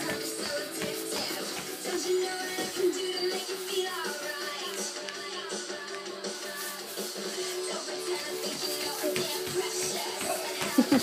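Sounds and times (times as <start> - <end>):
upbeat song from television: 0.0 - 11.0.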